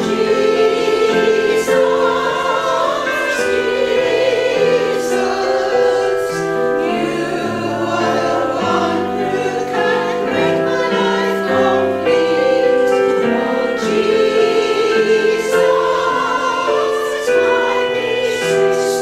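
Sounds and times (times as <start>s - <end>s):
women's choir singing: 0.0s - 19.0s.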